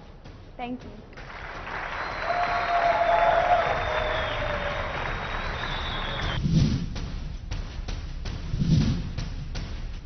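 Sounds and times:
audience applause: 1.2 - 6.4.

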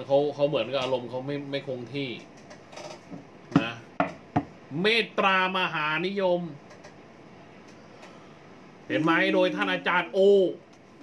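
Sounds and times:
person speaking: 8.8 - 10.8.

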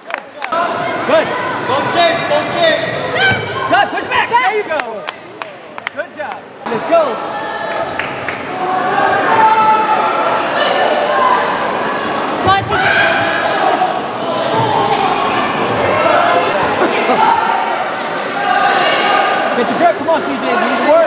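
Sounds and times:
people shouting in echoing hall: 6.6 - 21.0.

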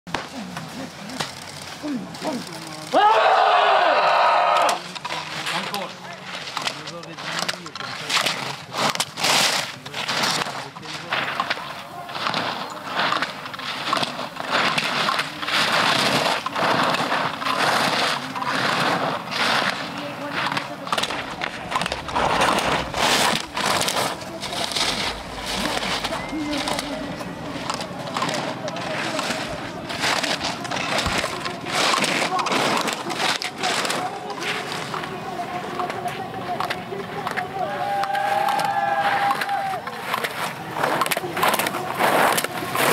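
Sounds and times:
skis scraping on icy snow: 4.6 - 42.9.

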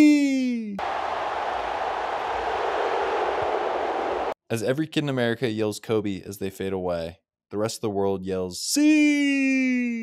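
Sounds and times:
stadium crowd cheering: 0.8 - 4.4.

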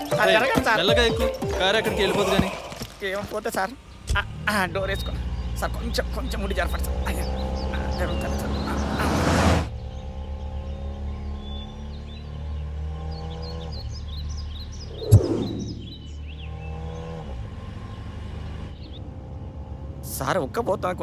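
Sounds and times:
birds chirping: 0.0 - 21.0.

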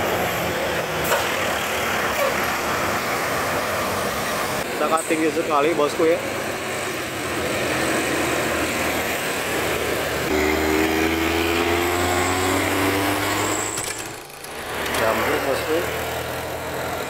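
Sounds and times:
steady engine hum: 0.0 - 17.0
truck passing: 0.0 - 17.0
motorcycles going by: 6.6 - 17.0.

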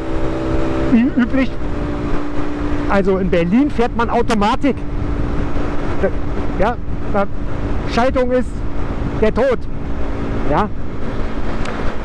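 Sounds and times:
motorcycle engine cruising: 0.0 - 12.0
road and wind noise: 0.0 - 12.0.

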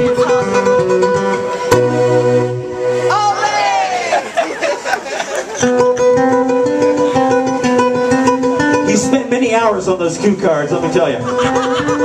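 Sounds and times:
smooth jazz band playing: 0.0 - 3.7, 5.1 - 11.3
electric guitar: 5.5 - 9.4.

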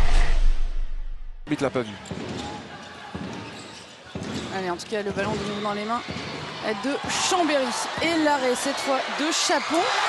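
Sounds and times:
ball bouncing on wooden floor: 4.2 - 7.3.

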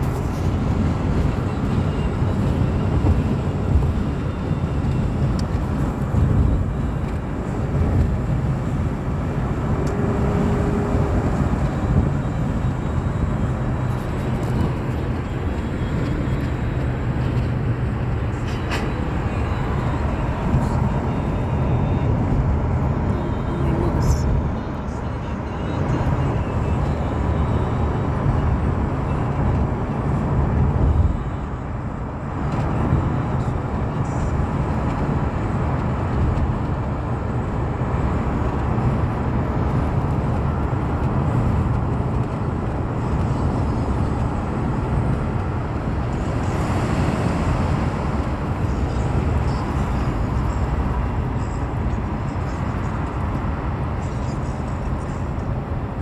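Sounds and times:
car cabin road and engine rumble: 0.0 - 56.0.

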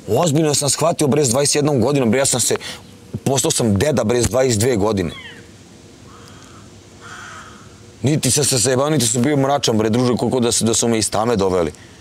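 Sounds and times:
bird harsh calls: 4.9 - 8.0.

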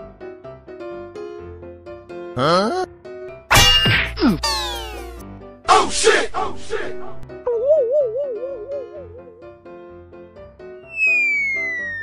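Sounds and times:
falling sliding tone: 10.9 - 12.0.

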